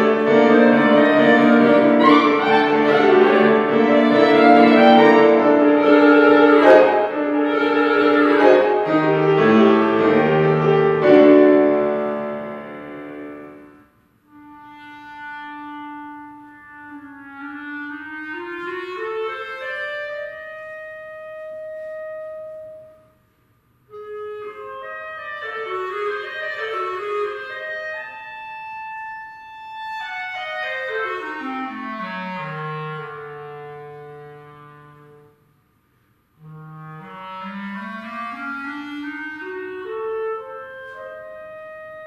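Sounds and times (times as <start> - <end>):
clarinet melody: 0.0 - 23.2, 23.9 - 35.5, 36.4 - 42.0.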